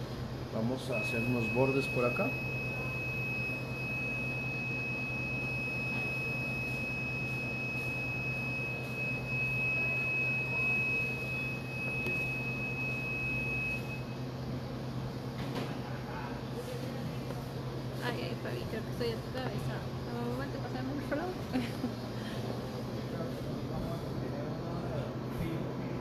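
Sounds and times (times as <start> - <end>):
high-pitched whine: 0.5 - 14.2.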